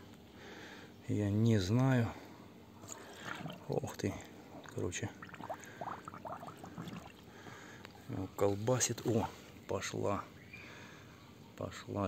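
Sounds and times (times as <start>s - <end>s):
water gurgling and bubbling: 2.8s - 7.4s.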